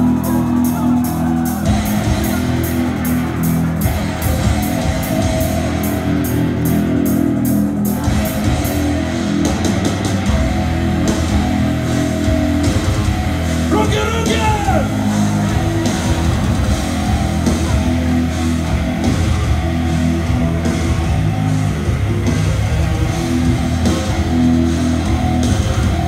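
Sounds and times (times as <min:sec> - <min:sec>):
live metal band playing: 0:00.0 - 0:26.0.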